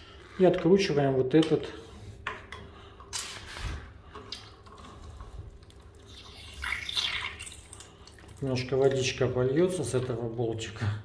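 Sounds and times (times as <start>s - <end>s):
water dripping and trickling: 4.2s - 10.2s.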